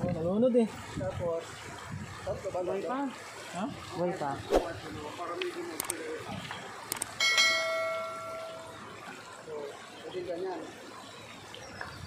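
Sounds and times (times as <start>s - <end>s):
bell chime ding: 7.2s - 8.7s.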